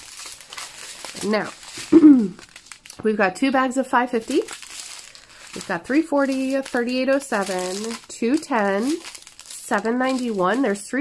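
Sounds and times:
plastic bags crinkling: 0.0s - 11.0s.

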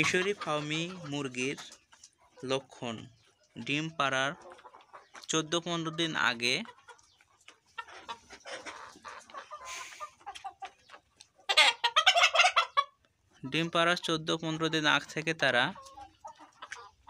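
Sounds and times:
chickens clucking: 0.0s - 17.0s
rapid chicken cackling: 0.0s - 17.0s.

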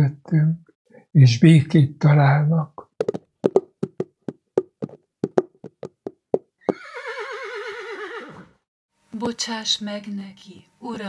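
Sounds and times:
hooves clip-clopping: 3.0s - 6.9s
horse whinny: 6.6s - 8.6s.

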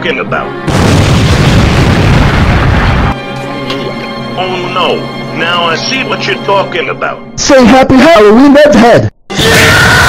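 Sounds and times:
background music: 0.0s - 10.0s
deep boom: 0.7s - 3.2s.

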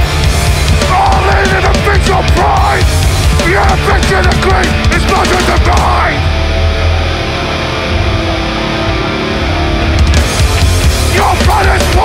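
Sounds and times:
bass guitar: 0.0s - 12.0s
distorted electric guitar chords: 0.0s - 12.0s
full punk band playing: 0.0s - 12.0s.

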